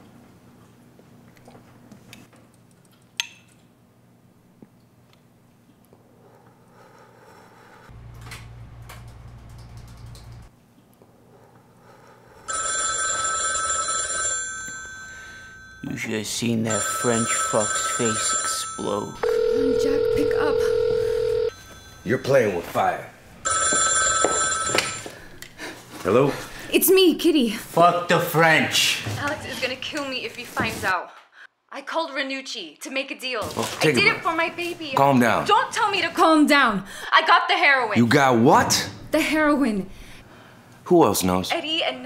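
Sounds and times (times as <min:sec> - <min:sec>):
telephone bell ringing: 0:12.5 - 0:22.6, 0:23.4 - 0:25.3.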